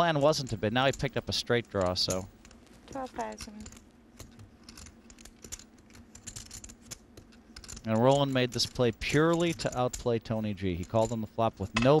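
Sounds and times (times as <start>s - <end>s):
clay poker chips clicking together: 3.3s - 10.2s.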